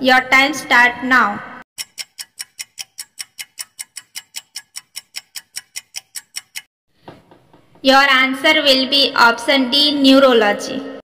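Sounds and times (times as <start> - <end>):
clock ticking fast: 1.8 - 6.7.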